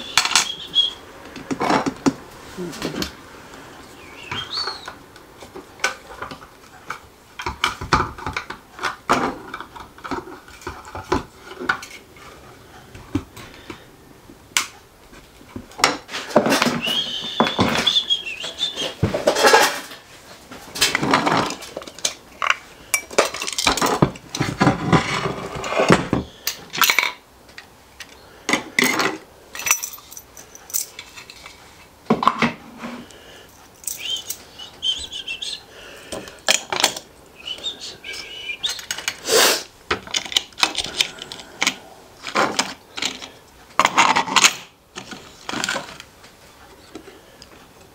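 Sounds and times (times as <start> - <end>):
plastic and metal parts clattering: 0.0 - 2.2, 4.2 - 12.4, 15.5 - 33.0, 36.1 - 37.6, 38.4 - 39.2, 39.9 - 46.2.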